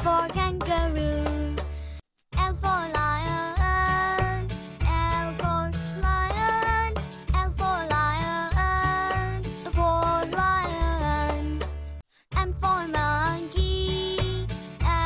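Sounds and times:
child-like voice singing: 0:02.4 - 0:11.6, 0:12.4 - 0:15.0.

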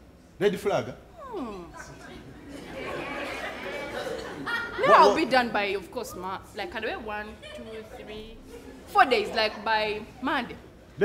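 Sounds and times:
audience chattering and murmuring: 0:01.2 - 0:11.0.

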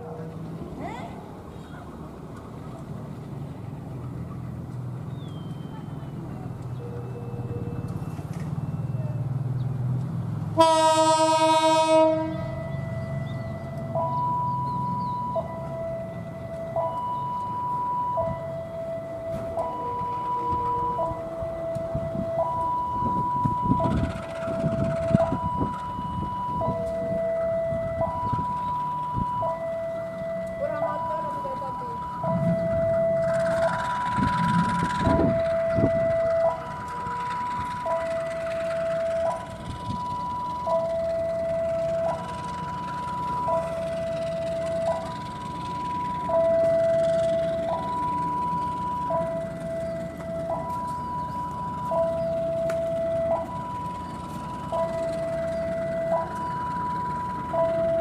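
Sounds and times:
locomotive engine rumbling: 0:00.0 - 0:58.0
two-tone warning signal: 0:06.6 - 0:09.5, 0:10.6 - 0:58.0
locomotive horn blast: 0:10.5 - 0:12.9.

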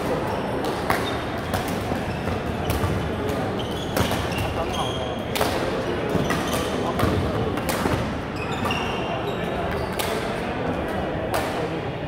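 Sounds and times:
voices chattering: 0:00.0 - 0:12.0
sneakers squeaking on court floor: 0:00.1 - 0:05.4, 0:06.0 - 0:10.3.

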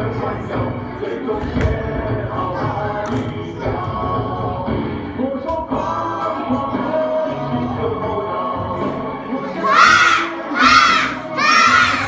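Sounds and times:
backing music: 0:00.0 - 0:12.0
children shouting in unison: 0:09.6 - 0:12.0.

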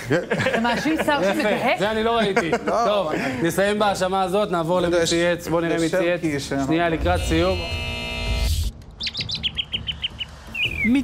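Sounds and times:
held music chord: 0:06.9 - 0:08.7
high bird chirps sound effect: 0:09.0 - 0:11.0.

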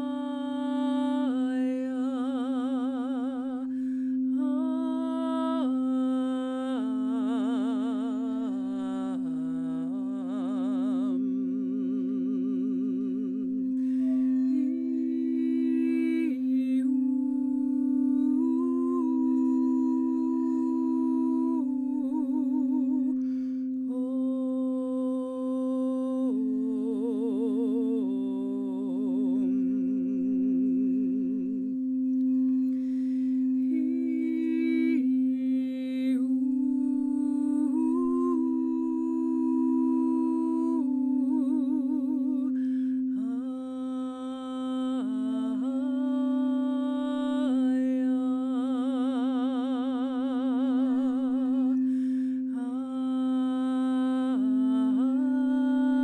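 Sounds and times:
woman singing long notes: 0:00.0 - 0:56.0.

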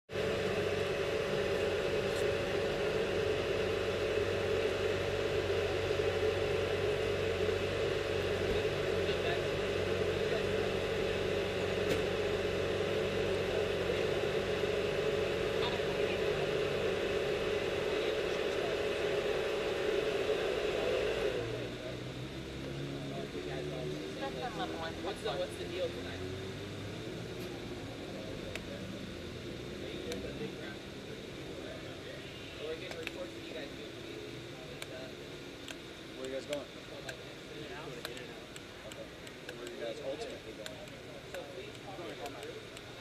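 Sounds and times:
vehicle engine idling: 0:00.1 - 0:43.0.

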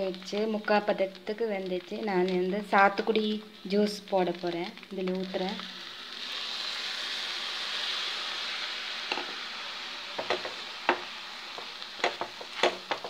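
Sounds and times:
juice sizzling in hot pan: 0:00.0 - 0:13.0.

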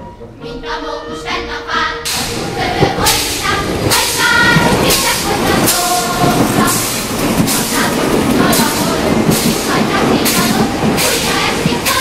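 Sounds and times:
steam locomotive rhythmic hissing: 0:00.0 - 0:12.0
steam train rolling rumble: 0:02.0 - 0:12.0.

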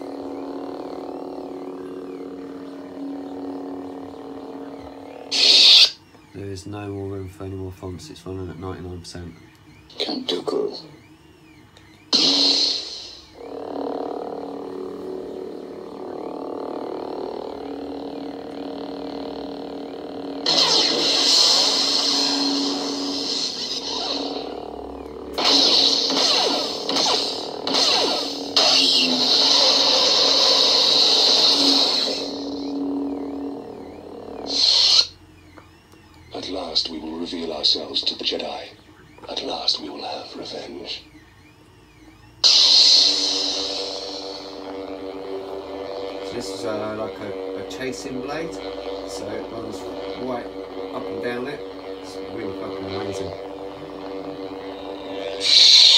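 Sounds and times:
lightsaber effect sounds: 0:00.0 - 0:06.6, 0:09.8 - 0:55.9
electric hum: 0:00.0 - 0:55.9
lightsaber ignition: 0:00.0 - 0:55.9
lightsaber retraction: 0:04.6 - 0:06.3, 0:11.9 - 0:13.4, 0:20.4 - 0:24.7, 0:25.3 - 0:33.4, 0:34.4 - 0:35.2, 0:42.4 - 0:44.7, 0:55.2 - 0:55.9.

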